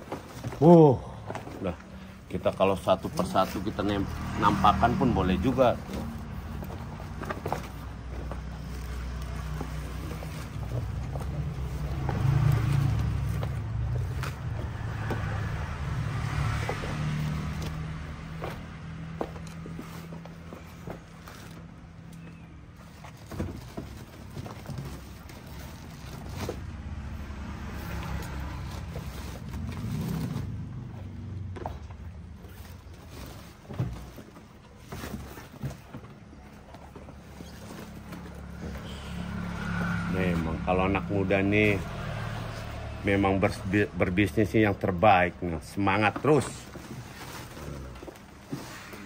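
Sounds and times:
sneakers being handled: 5.4 - 15.6, 16.5 - 26.8.

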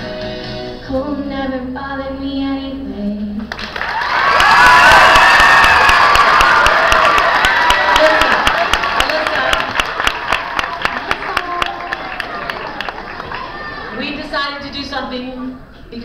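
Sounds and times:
audience clapping: 3.5 - 14.0
children cheering: 3.7 - 14.0.

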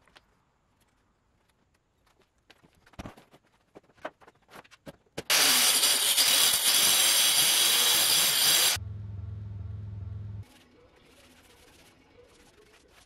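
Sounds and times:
power saw cutting board: 5.3 - 8.8
steady low hum: 8.8 - 10.5.

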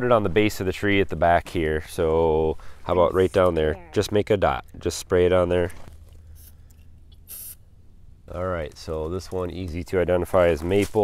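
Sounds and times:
spray paint can hissing: 7.2 - 7.6.

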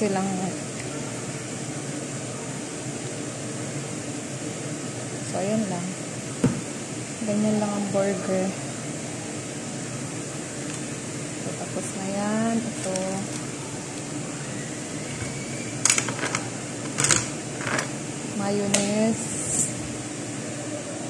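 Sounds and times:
room hum: 0.0 - 21.0
person speaking: 11.4 - 13.6.

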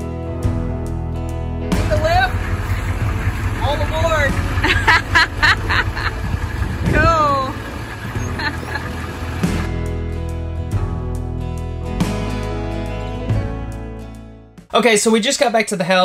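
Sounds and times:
bus engine rumbling: 1.8 - 9.8.

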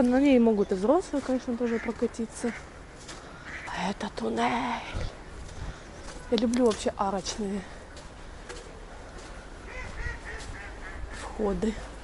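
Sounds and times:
waterfowl calling: 1.5 - 3.8, 9.6 - 11.6.

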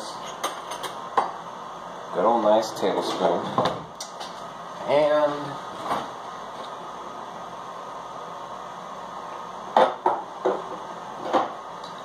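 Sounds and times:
room hiss: 0.0 - 12.0.

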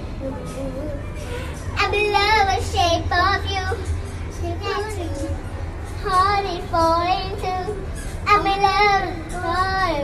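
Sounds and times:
girl singing into microphone: 1.8 - 10.0.

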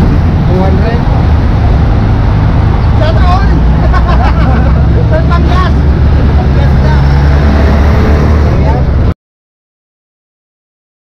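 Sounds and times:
vehicle engine running: 0.0 - 9.1
road traffic: 0.0 - 9.2.

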